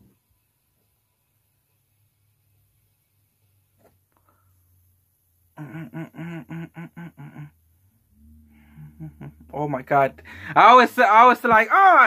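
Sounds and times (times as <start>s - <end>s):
man humming staccato notes: 5.6s - 7.5s, 8.1s - 10.7s.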